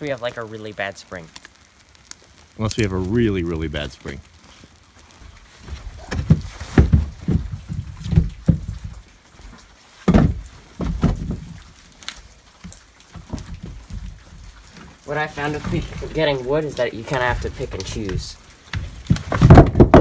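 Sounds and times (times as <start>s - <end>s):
logs knocking together: 5.3s - 20.0s.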